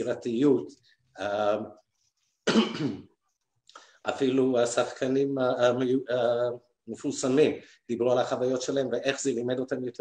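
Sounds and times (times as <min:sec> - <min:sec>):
man coughing and clearing throat: 0:02.4 - 0:03.2.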